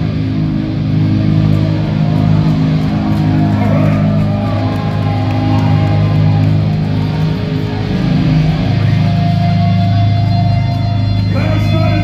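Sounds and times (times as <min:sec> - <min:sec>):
heavy distorted electric guitar: 0:00.0 - 0:12.0
live metal band playing: 0:00.0 - 0:12.0.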